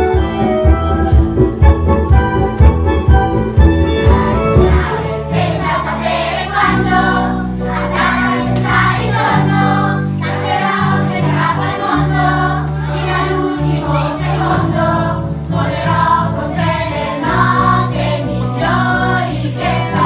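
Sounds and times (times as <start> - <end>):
band of guitars and keyboards: 0.0 - 20.0
children's choir singing: 4.0 - 20.0.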